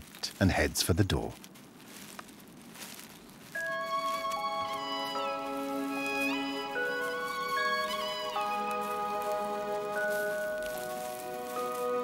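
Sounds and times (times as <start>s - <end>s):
soft string-like background music: 2.8s - 12.0s.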